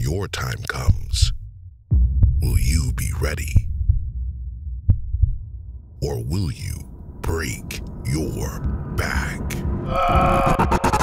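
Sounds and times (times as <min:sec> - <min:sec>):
pulsing heartbeat-like bass: 0:00.0 - 0:06.0.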